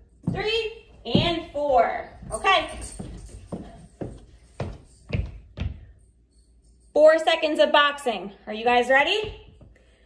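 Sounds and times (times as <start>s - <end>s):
footsteps on wooden stairs: 0.2s - 5.9s.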